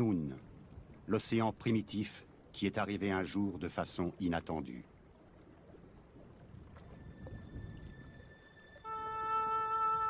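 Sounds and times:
faint low rumble: 0.0s - 8.9s
music with long held notes: 7.6s - 10.0s.

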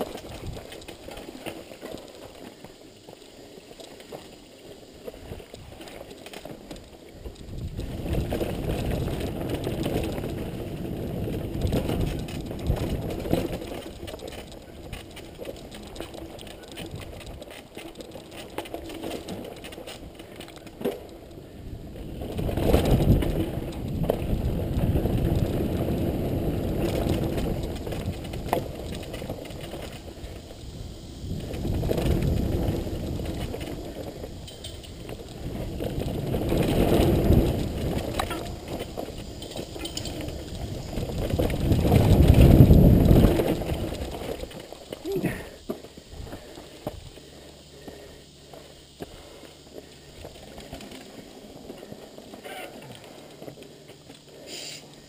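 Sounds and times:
wind rumble on microphone: 0.0s - 1.1s, 7.2s - 17.6s, 21.3s - 47.2s
bike rattling: 0.0s - 55.0s
tyres rolling over dirt and stones: 0.0s - 55.0s.

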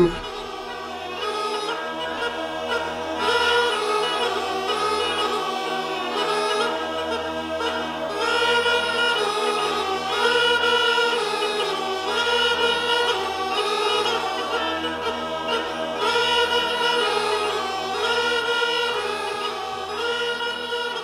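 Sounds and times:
choir singing held notes: 0.0s - 1.3s.

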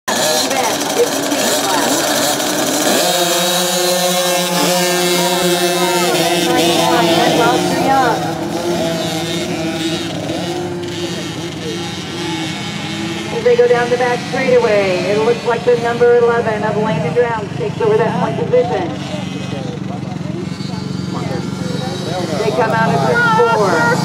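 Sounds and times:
dirt bike engines racing: 0.0s - 24.0s.

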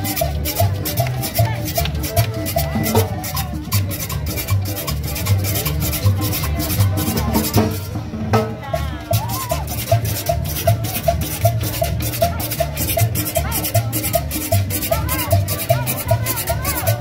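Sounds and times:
accordion melody: 0.0s - 8.0s, 9.7s - 17.0s
drum: 0.0s - 17.0s
upright bass: 0.0s - 17.0s
metal scraper scraped in rhythm: 9.2s - 17.0s.

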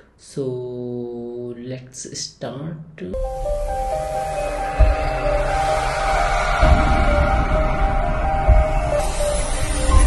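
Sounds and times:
deep low hits: 3.2s - 10.0s
intro music: 3.2s - 10.0s.

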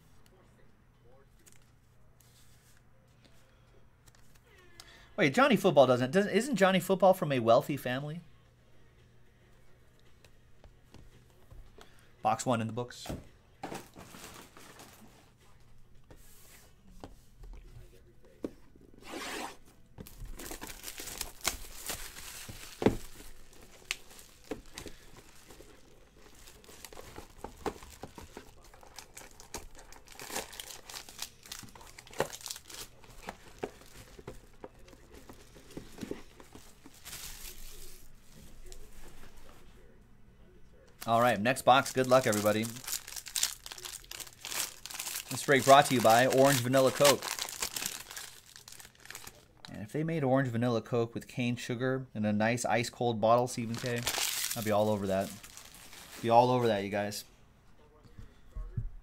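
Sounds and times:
shrink wrap crackling: 20.0s - 35.3s, 41.0s - 49.7s, 53.6s - 56.6s.

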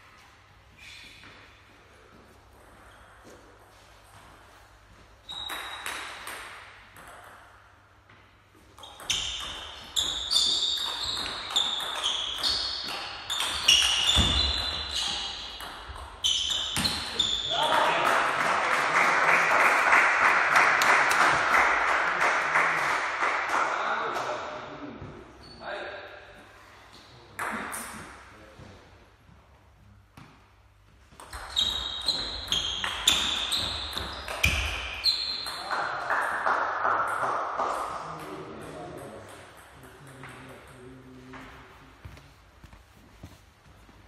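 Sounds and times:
crowd applauding: 17.8s - 23.8s.

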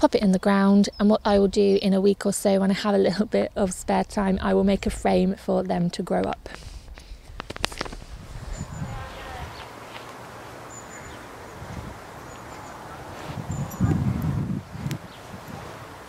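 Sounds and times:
bird chirps: 10.6s - 11.6s, 12.2s - 14.0s.

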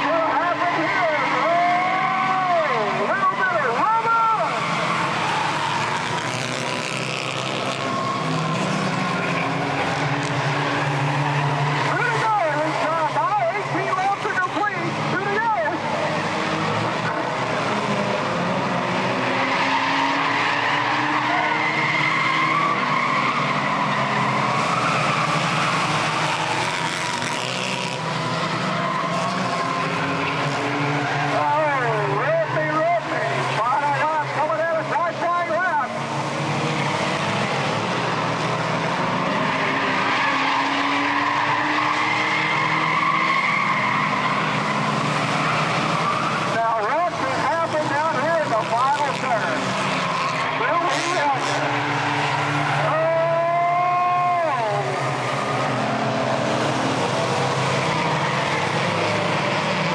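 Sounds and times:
race car engines at high revs: 0.0s - 59.9s
tire squeal: 0.0s - 59.9s.

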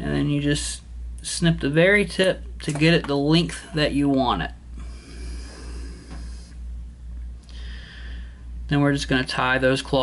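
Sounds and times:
pulsing low hum: 3.6s - 8.9s.

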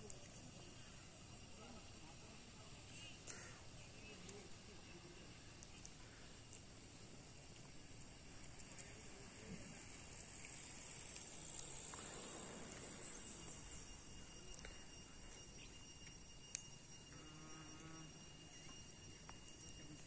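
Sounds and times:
insect drone: 0.0s - 20.0s
soft hiss: 0.0s - 20.0s.

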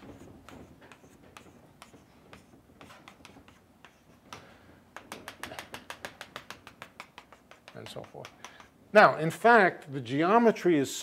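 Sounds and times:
chalk scratching on blackboard: 0.0s - 4.4s, 5.0s - 8.7s
chalk tapping on blackboard: 0.0s - 8.8s.

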